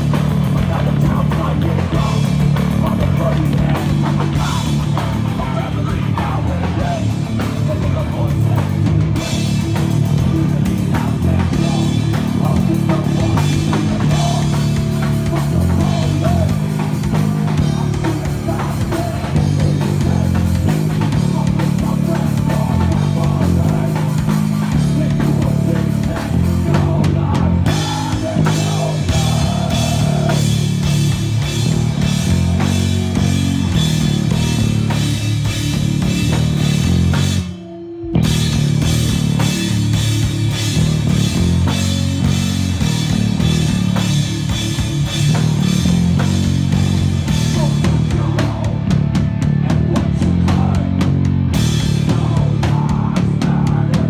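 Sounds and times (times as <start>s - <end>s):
bass guitar: 0.0s - 54.0s
distorted electric guitar: 0.0s - 54.0s
hardcore band playing live: 0.0s - 54.0s
pounding drum kit: 0.0s - 54.0s.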